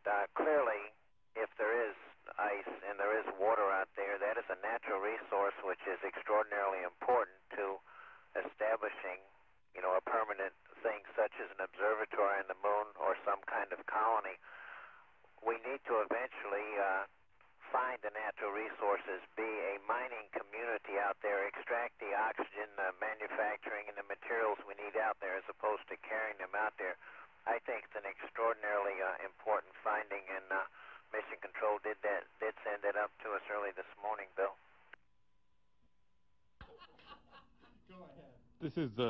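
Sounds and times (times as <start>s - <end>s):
man talking over radio: 0.0s - 9.2s, 9.8s - 34.6s, 38.6s - 39.0s.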